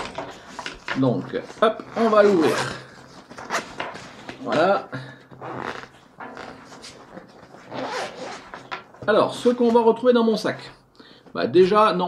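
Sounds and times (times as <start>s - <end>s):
fabric rustling: 0.0s - 9.9s
zipper being pulled open: 1.9s - 3.7s, 5.4s - 8.7s.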